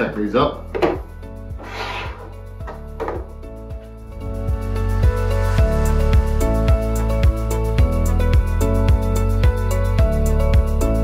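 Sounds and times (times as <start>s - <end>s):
background music: 0.0s - 11.0s
plastic trays scraping: 1.6s - 2.4s.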